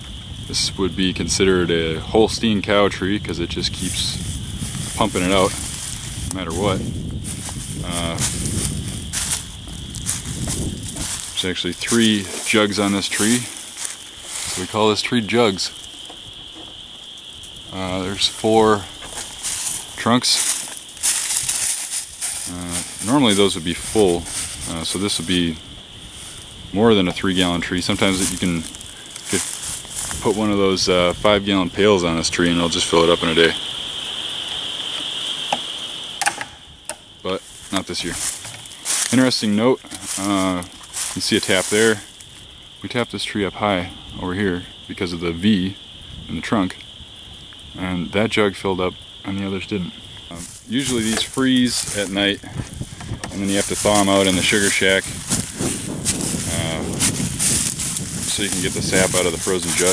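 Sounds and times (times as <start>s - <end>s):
rustling handling noise: 3.8s - 16.8s, 17.4s - 30.8s, 37.4s - 42.4s, 50.4s - 59.9s
sharp knocks: 36.2s - 37.0s.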